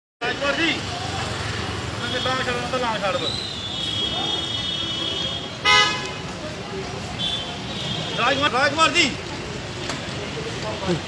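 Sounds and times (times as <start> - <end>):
people's voices: 0.2 - 11.0
traffic rumble: 0.2 - 11.0.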